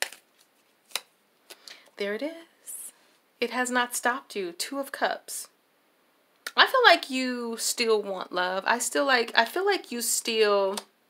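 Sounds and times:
cards snapping: 0.0s - 1.6s.

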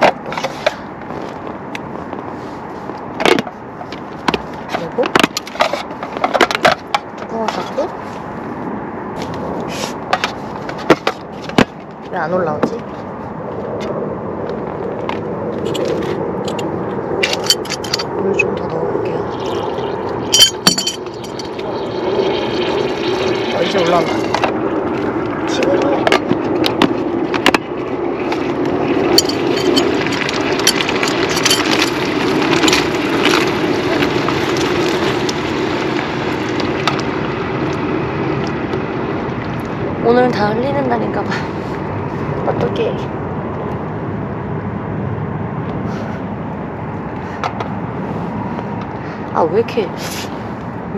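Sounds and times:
bubbling hiss: 18.3s - 40.4s.

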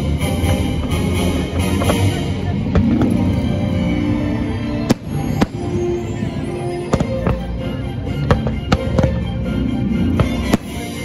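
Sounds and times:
show music: 0.0s - 11.0s.

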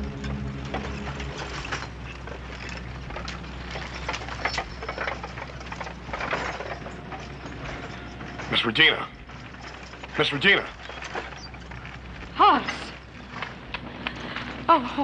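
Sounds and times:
harness and wagon creaking: 0.0s - 15.0s.

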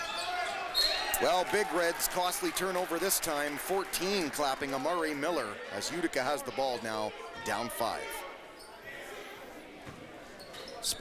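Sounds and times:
low murmur of gymnasium: 0.0s - 11.0s.

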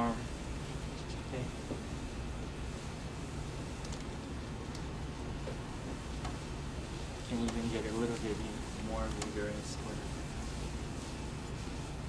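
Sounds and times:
low room hum: 0.0s - 12.0s
man speaking: 7.3s - 10.1s.

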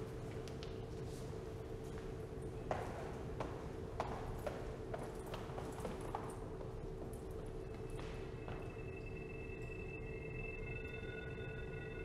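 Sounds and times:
steady low hum: 0.0s - 12.0s
footsteps on hard stairs: 2.6s - 8.7s.

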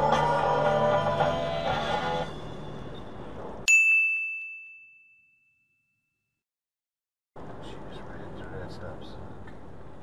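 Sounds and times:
bright bell ding: 3.7s - 6.2s.

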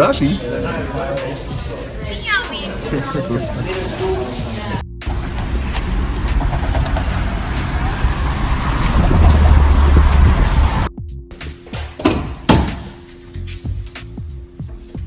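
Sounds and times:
wind buffeting microphone: 5.1s - 10.9s
sharp knocks: 6.3s - 7.2s, 11.8s - 12.9s.

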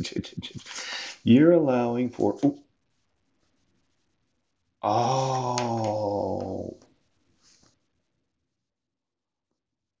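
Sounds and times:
man saying oh: 4.8s - 6.8s.

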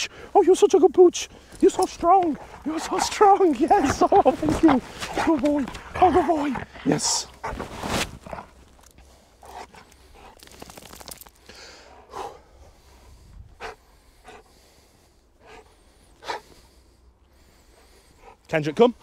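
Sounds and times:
heavy breathing puffs: 0.0s - 10.8s, 11.4s - 19.0s.

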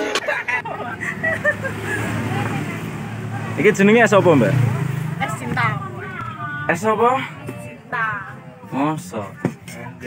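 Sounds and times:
faint voices talking: 1.8s - 10.0s.

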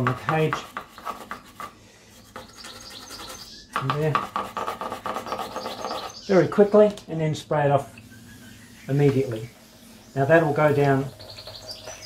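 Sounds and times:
brush scrubbing metal: 0.0s - 6.8s, 7.7s - 12.0s.

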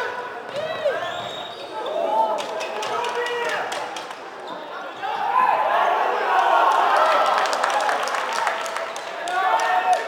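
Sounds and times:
shoes squeaking on sports floor: 0.7s - 2.7s.

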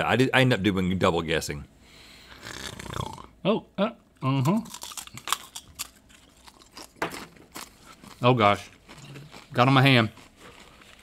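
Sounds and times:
chewing crisp chips: 4.2s - 11.0s.

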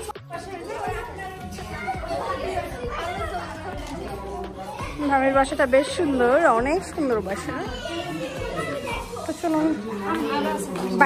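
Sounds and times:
chatter of voices: 0.0s - 11.0s.

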